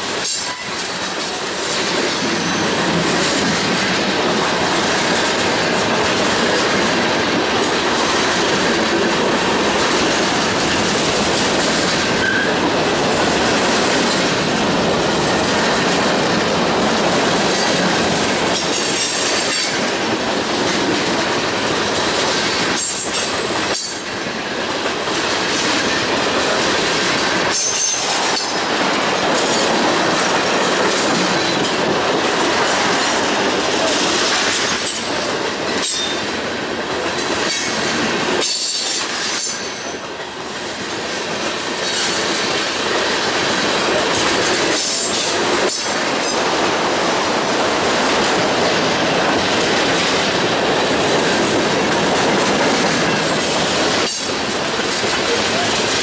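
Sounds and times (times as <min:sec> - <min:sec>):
clatter over rail joints: 0:00.0 - 0:56.0
train wheels rumbling on rail: 0:00.0 - 0:56.0.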